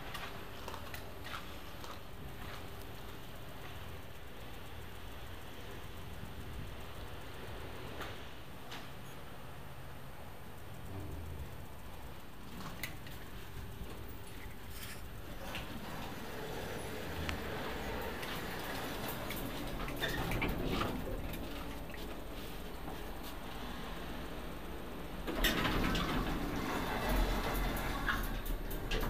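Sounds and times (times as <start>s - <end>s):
lift rumble: 10.5s - 29.0s
lift humming: 10.6s - 29.0s.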